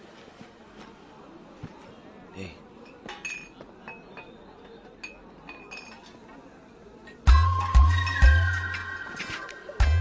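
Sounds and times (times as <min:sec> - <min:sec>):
busy drinking hall crowd: 0:00.0 - 0:10.0
glasses clinking: 0:02.8 - 0:06.2.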